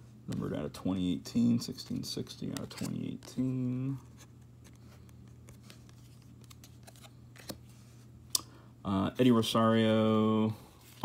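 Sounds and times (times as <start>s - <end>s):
low steady hum: 0.0s - 11.0s
cards sliding and tapping: 1.7s - 7.9s.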